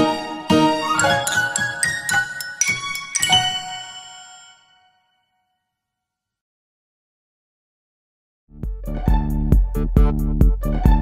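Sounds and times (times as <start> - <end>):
bell-like chimes note: 0.8 - 5.2.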